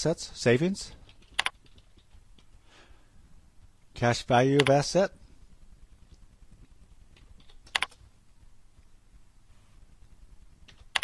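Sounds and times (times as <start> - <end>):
computer keyboard keystrokes: 1.1 - 2.2, 7.2 - 8.0, 10.7 - 11.0.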